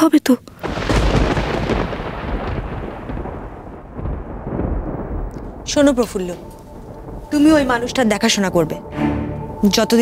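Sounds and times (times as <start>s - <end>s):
thunder-like rumble: 0.5s - 10.0s.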